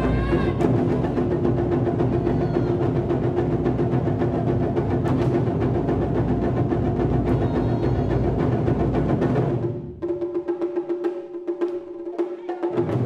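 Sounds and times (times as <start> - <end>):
ensemble drumming on barrel drums: 0.0 - 13.0.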